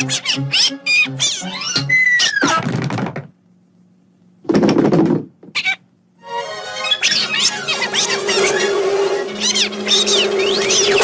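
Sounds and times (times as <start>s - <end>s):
cartoon duck raspy squawking: 0.0s - 2.6s, 6.8s - 11.0s.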